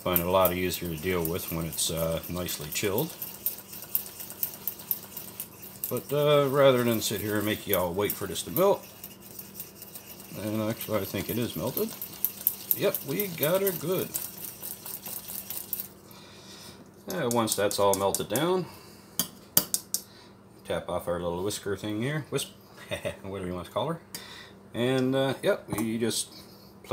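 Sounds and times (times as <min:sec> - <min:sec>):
whisk scraping in saucepan: 0:00.0 - 0:16.0.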